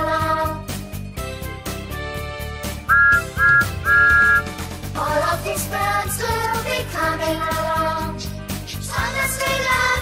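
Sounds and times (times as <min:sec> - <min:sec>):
upbeat children's music: 0:00.0 - 0:10.0
train whistle toots: 0:02.9 - 0:04.6.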